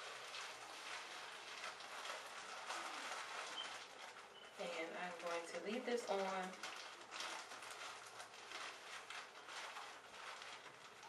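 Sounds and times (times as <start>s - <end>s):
shower cap rustling and crinkling: 0.0s - 11.0s.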